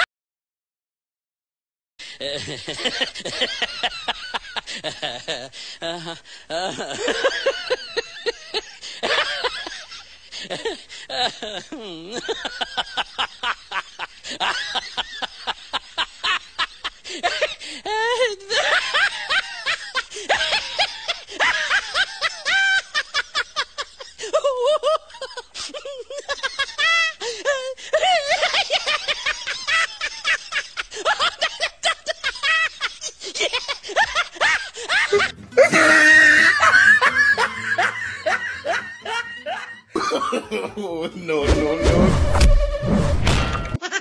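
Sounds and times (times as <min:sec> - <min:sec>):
person laughing: 0:02.2 - 0:41.6, 0:43.8 - 0:44.0.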